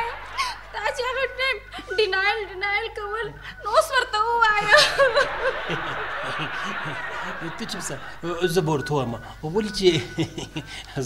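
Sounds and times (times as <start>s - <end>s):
audience laughter: 0.0s - 1.6s, 4.6s - 8.9s.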